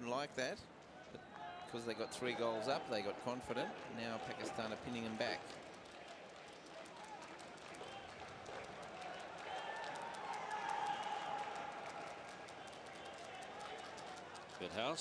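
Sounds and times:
stadium crowd hubbub: 0:00.0 - 0:15.0.

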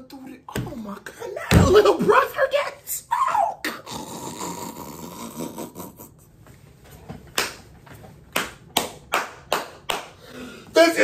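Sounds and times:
man groaning: 0:03.1 - 0:06.2.

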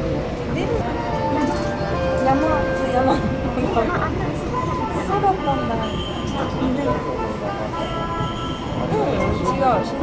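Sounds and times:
monorail rumbling with faint whine: 0:00.0 - 0:10.0.

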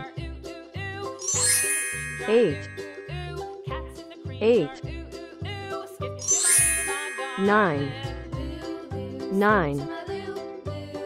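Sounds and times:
cheerful children's music: 0:00.0 - 0:11.0
shimmering chime: 0:01.2 - 0:03.4, 0:06.2 - 0:08.0.

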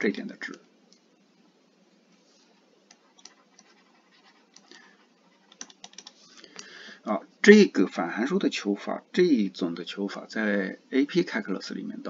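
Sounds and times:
stylus tapping and scratching on screen: 0:00.4 - 0:06.7.

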